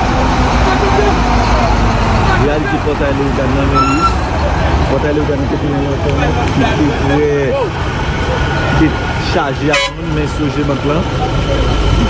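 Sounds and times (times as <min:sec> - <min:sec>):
bus and trucks engines running: 0:00.0 - 0:12.0
people talking: 0:00.5 - 0:12.0.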